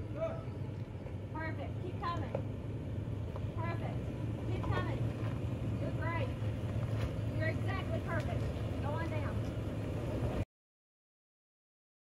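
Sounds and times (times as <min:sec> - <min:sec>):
voices: 0:00.0 - 0:10.4
engine low rumble: 0:00.0 - 0:10.5.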